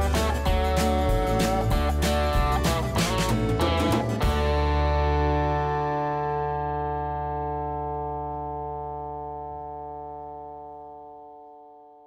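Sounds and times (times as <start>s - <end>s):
guitar chord ringing: 0.0s - 12.0s.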